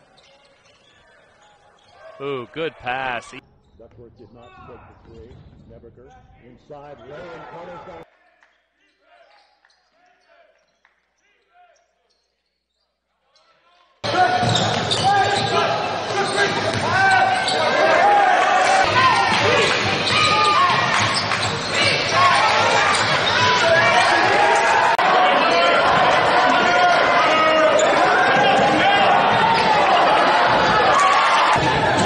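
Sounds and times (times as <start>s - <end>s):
voices echoing in hall: 0.0s - 12.5s, 13.2s - 32.0s
crowd chatter: 0.8s - 3.4s, 14.0s - 32.0s.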